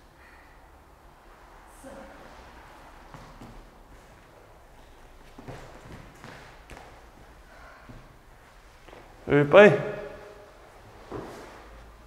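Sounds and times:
light thuds of hands and shoes: 0:03.0 - 0:09.2.

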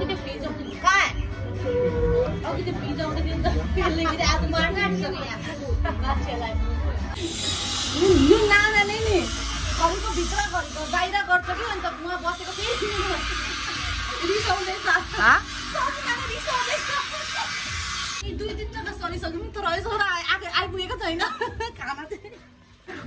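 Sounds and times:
voices: 0:00.0 - 0:22.4
background music: 0:00.0 - 0:23.0.

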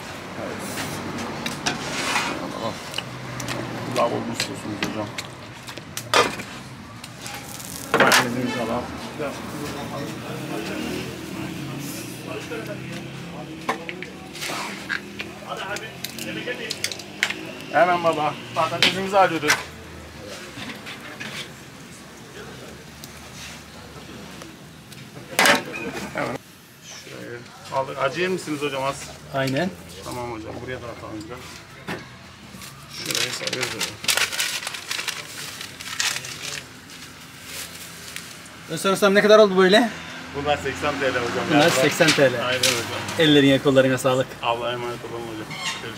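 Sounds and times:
murmur of background voices: 0:00.0 - 0:45.9
wrapping paper crinkling: 0:32.6 - 0:38.4.

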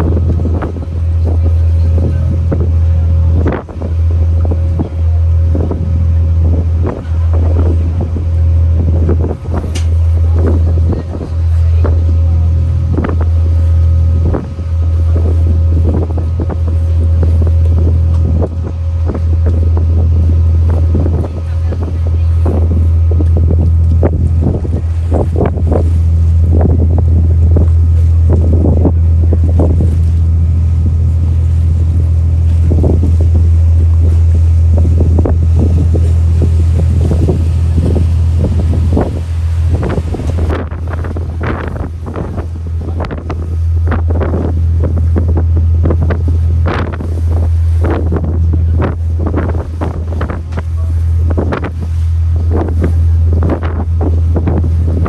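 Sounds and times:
boat engine: 0:00.0 - 0:55.0
water noise: 0:00.0 - 0:55.0
wind rumbling on microphone: 0:00.0 - 0:55.0.

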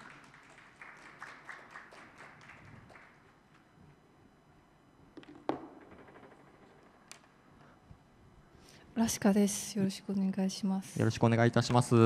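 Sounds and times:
sparse applause: 0:00.0 - 0:03.3.

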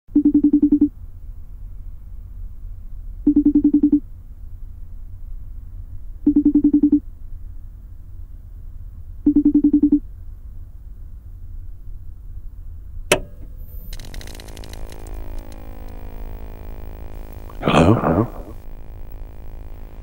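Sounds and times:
steady low hum: 0:00.2 - 0:20.0.

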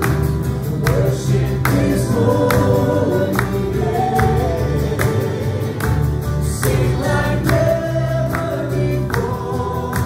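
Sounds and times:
acoustic guitars: 0:00.0 - 0:10.0
bass guitar: 0:00.0 - 0:10.0
voices singing together: 0:00.5 - 0:10.0.

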